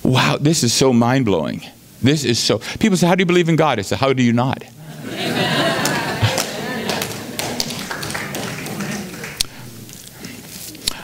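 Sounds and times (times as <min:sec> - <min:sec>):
people laughing: 0:04.8 - 0:09.4
murmuring voices: 0:04.8 - 0:10.8
footsteps tapping: 0:06.2 - 0:10.4.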